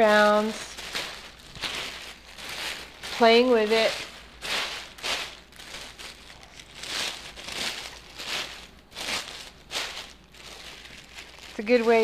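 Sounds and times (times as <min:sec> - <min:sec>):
tissue paper rustling: 0:00.0 - 0:12.0.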